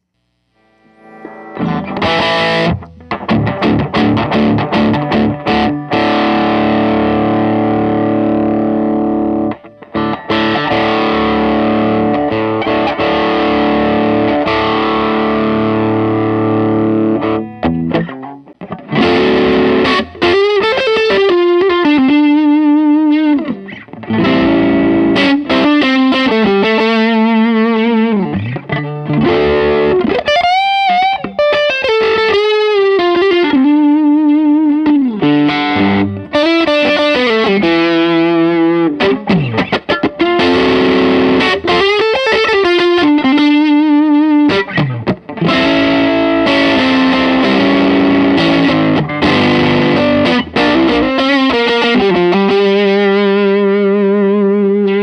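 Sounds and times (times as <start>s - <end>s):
overdriven electric guitar lead: 0.0s - 55.0s.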